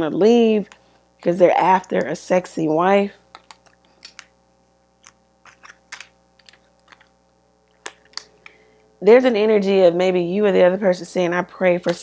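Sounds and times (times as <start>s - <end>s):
cards being shuffled: 3.3s - 4.3s, 5.0s - 7.1s.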